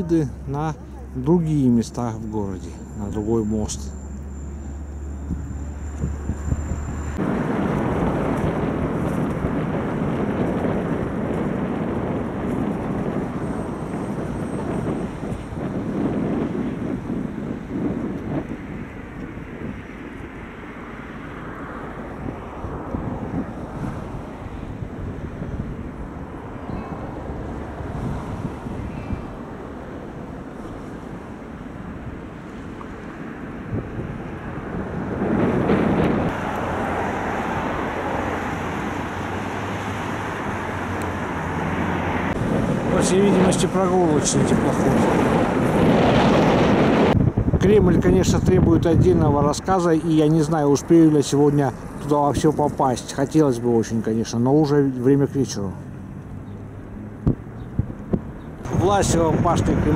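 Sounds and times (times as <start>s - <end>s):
wind buffeting microphone: 0.0s - 54.7s, 55.6s - 59.9s.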